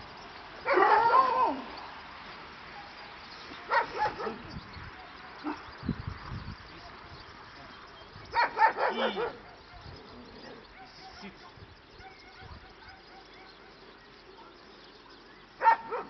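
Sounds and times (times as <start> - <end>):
dog barking: 0.6 - 1.5, 3.7 - 4.4, 8.3 - 10.0, 10.7 - 11.3, 12.0 - 13.7, 15.6 - 16.0.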